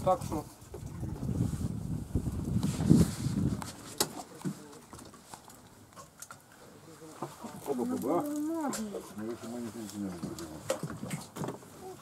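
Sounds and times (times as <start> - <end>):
wind rumble on microphone: 0.0 - 4.0.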